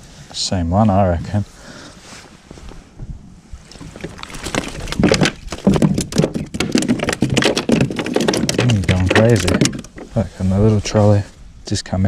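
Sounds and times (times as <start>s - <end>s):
fish flapping on plastic deck: 3.7s - 10.1s.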